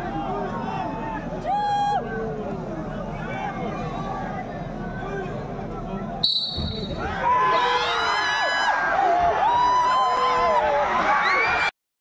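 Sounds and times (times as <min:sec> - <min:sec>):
crowd chatter: 0:00.0 - 0:11.7
sharp whistle blast: 0:06.2 - 0:07.0
crowd shouting: 0:06.7 - 0:11.7.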